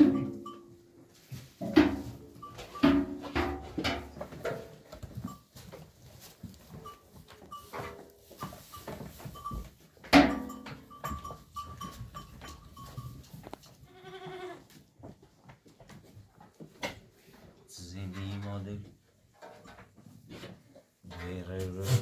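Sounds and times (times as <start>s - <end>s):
knocks and rustling from herd: 0.0s - 22.0s
goats bleating: 13.8s - 14.7s.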